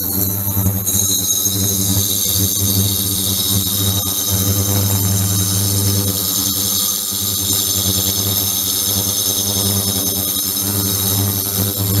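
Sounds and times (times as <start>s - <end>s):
ultrasonic tank buzzing: 0.0s - 12.0s.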